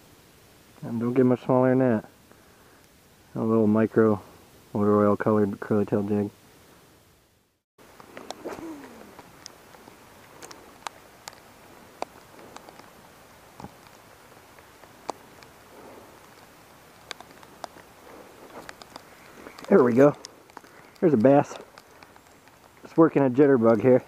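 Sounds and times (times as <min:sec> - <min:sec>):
steady low hiss: 0:00.0 - 0:24.0
sharp ticks: 0:09.1 - 0:13.0, 0:13.6 - 0:24.0.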